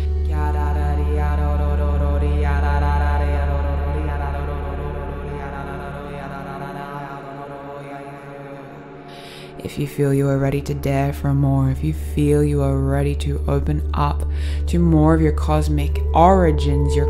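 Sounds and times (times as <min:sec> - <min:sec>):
chant-like toned notes: 0:00.0 - 0:17.0
deep sustained drone: 0:00.0 - 0:17.0.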